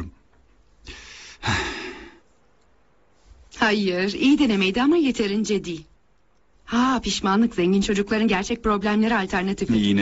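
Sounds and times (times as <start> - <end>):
person sighing: 0.9 - 2.2.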